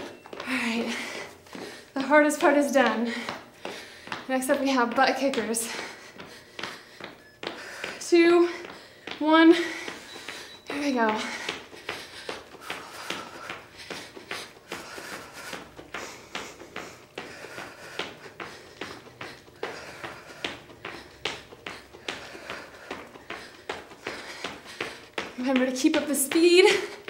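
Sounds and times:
sneaker footfalls jogging in place: 0.0 - 27.0.

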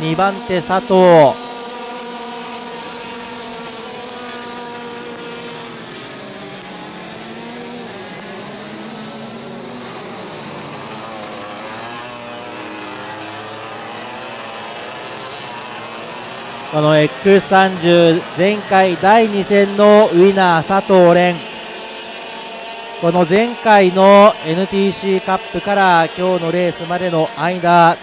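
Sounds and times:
racing kart engines: 0.0 - 28.0.

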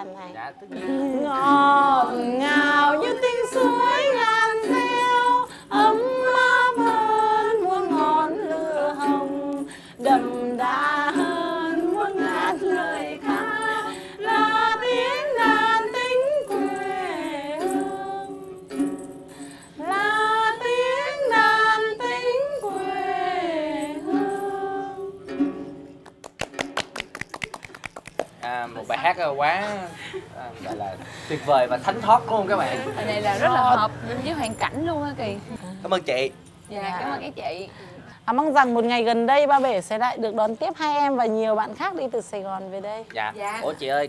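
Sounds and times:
plucked lute: 0.6 - 27.2
women singing folk song: 0.7 - 25.8
people talking: 28.4 - 44.0.

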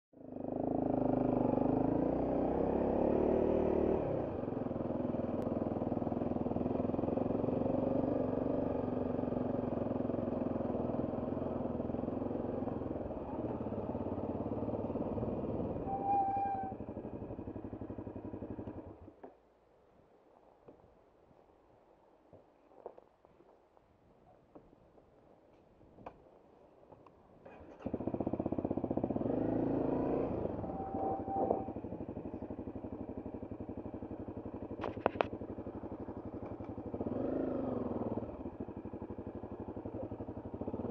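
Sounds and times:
motorcycle engine running: 0.2 - 19.3, 27.4 - 40.9
brief squeal: 15.8 - 16.8, 30.4 - 31.8.

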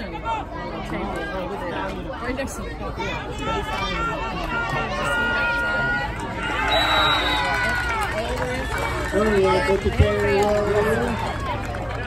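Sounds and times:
crowd babble and calling out: 0.0 - 12.0.

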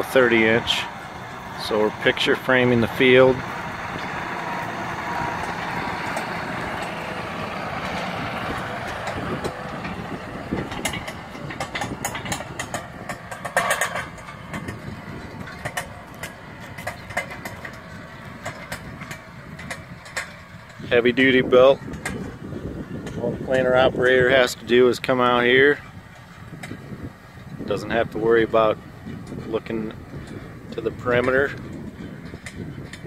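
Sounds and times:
tractor diesel engine running: 0.0 - 33.0
sharp clicks and knocks: 1.6 - 20.8, 21.8 - 22.4, 31.0 - 33.0.

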